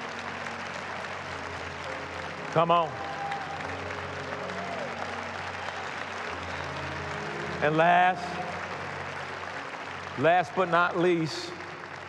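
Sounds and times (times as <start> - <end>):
congregation applauding: 0.0 - 12.0.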